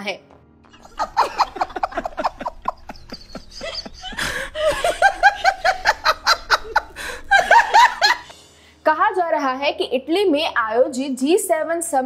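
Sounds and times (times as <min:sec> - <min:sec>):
person laughing: 0:00.8 - 0:08.3.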